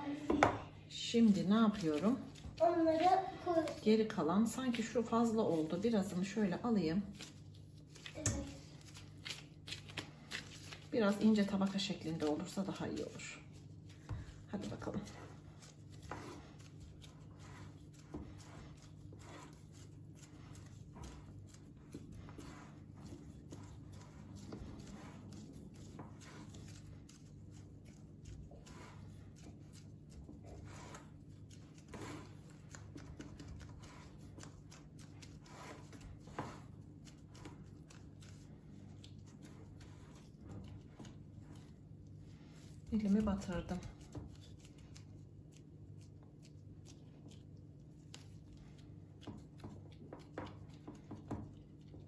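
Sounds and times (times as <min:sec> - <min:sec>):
gloved hands rustling and tapping: 0:07.1 - 0:28.7.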